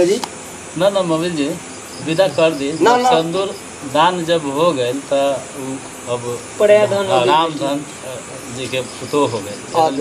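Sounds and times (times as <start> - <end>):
crickets chirping: 0.0 - 10.0
man talking: 0.8 - 10.0.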